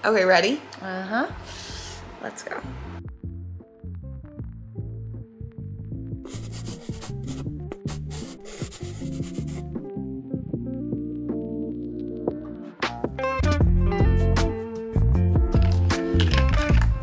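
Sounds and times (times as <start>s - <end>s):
paint brush strokes on paper: 6.3s - 9.8s.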